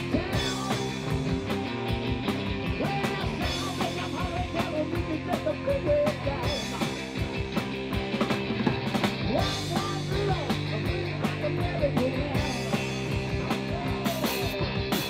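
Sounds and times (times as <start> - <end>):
man singing into microphone: 0.0 - 0.8, 2.8 - 6.6, 9.3 - 12.7
rock and roll band playing: 0.0 - 15.0.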